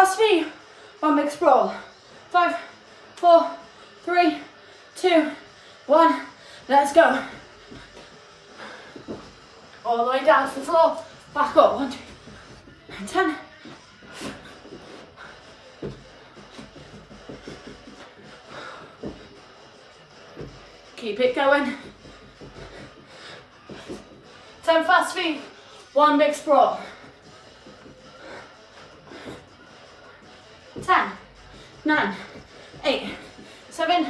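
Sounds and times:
woman's voice: 0.0 - 7.4, 9.8 - 12.3, 12.9 - 14.4, 21.0 - 22.0, 24.6 - 27.1, 30.8 - 34.0
soft footfalls on carpet: 6.9 - 9.7, 10.4 - 20.8, 21.6 - 24.4.

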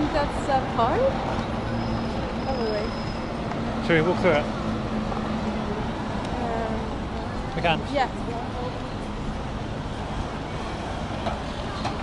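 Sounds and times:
road traffic noise: 0.0 - 12.0.

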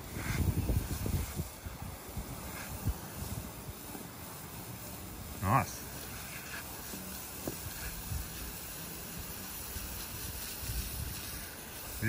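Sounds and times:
water spraying from a hose: 0.0 - 12.0.

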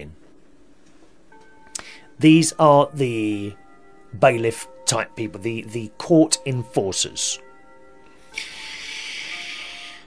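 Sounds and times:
background music with held notes: 0.2 - 10.0
steady hiss: 8.1 - 10.0.

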